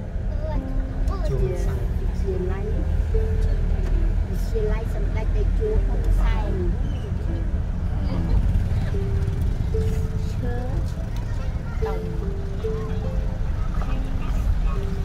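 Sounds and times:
car rumbling in motion: 0.0s - 15.0s.

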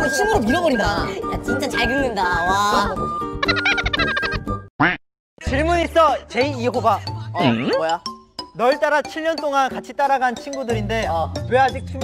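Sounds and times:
background music: 0.0s - 4.7s, 5.4s - 12.0s
laughter: 3.5s - 4.4s.

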